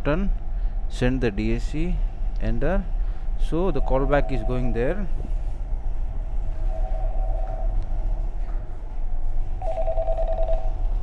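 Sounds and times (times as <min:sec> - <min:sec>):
steady low hum: 0:00.0 - 0:11.0
warbling electronic alert tone: 0:03.7 - 0:04.9.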